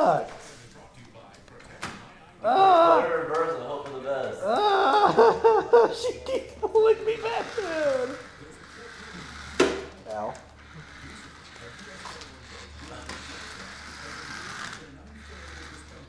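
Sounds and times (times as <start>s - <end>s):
toy car motor whirring: 7.0s - 16.0s.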